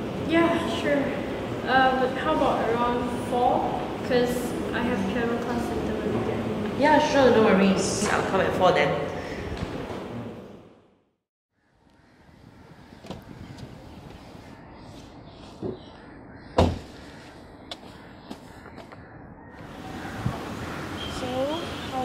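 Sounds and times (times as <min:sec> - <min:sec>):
loud thump: 0:16.6 - 0:16.9.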